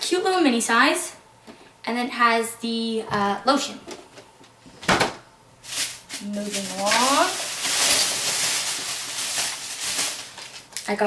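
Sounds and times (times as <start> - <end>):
rustling and handling noise: 3.9 - 11.0.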